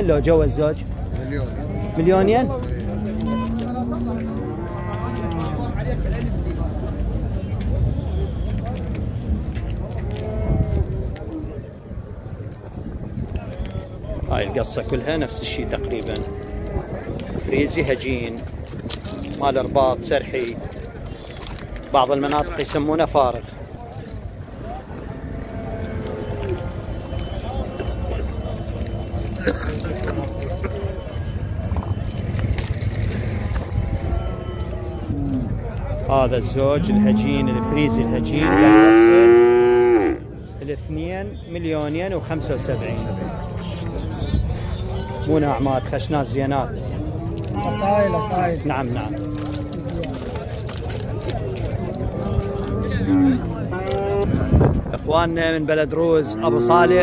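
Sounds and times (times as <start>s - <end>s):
wind rumble on microphone: 0.0s - 40.6s, 42.7s - 57.0s
crowd chatter: 0.0s - 57.0s
calves mooing: 36.8s - 40.2s.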